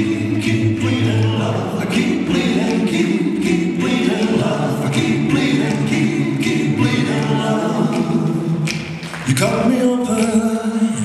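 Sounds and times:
a cappella voices singing chords: 0.0 - 11.0.

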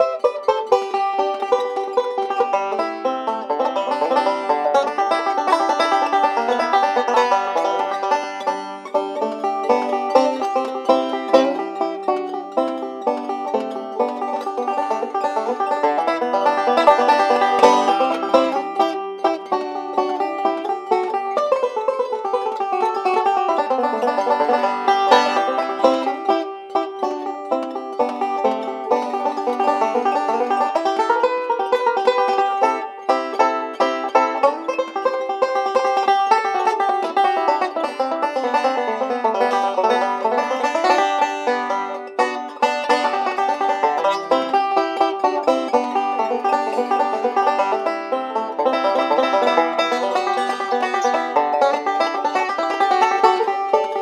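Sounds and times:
banjo picking: 0.0 - 54.0.

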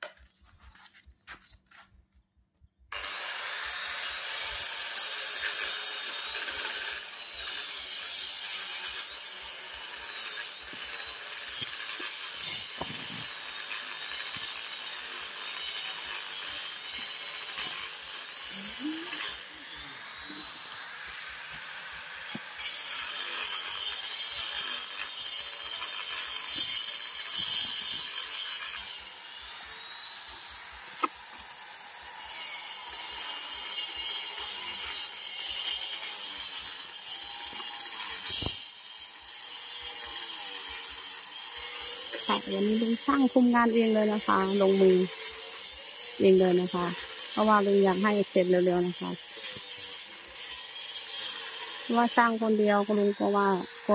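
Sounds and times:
angle grinder cutting tile: 2.9 - 53.9.

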